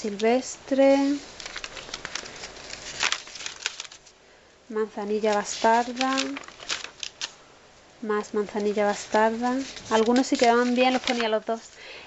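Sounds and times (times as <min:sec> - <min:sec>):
paper page rustling: 0:00.9 - 0:04.2, 0:05.1 - 0:07.4, 0:08.4 - 0:11.5.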